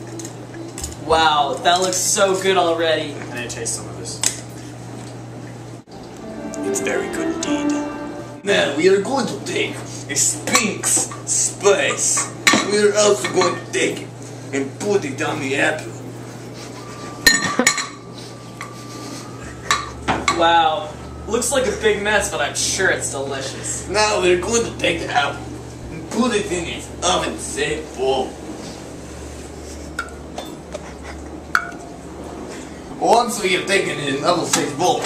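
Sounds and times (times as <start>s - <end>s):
ceramic dish clinking: 17.2s - 18.0s.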